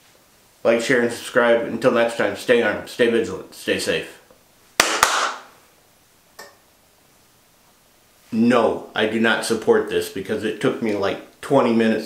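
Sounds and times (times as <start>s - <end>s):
sharp cracks: 4.8s - 5.5s.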